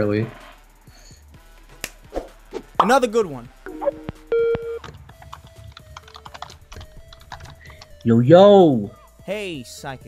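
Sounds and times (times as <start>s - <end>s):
keyboard keys clicking: 3.8s - 8.0s.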